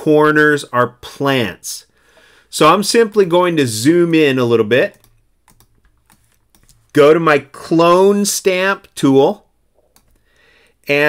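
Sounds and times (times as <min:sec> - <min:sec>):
keyboard and mouse clicks: 0:04.8 - 0:07.0, 0:09.8 - 0:10.2.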